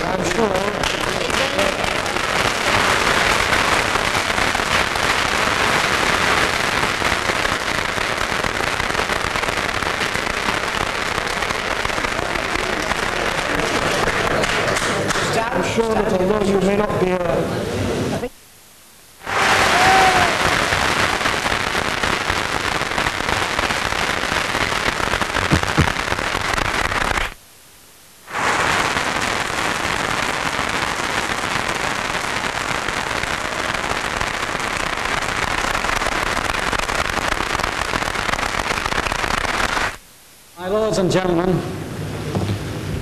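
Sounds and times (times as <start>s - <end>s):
audience applauding: 0.0s - 6.5s, 11.2s - 15.5s, 19.3s - 22.5s.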